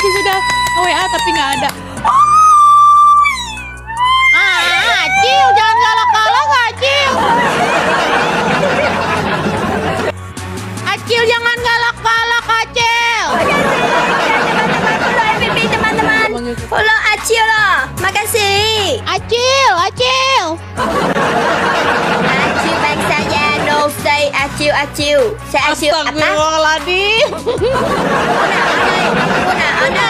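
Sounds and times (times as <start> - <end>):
woman squealing: 0.0 - 7.3
faint background music: 0.0 - 30.0.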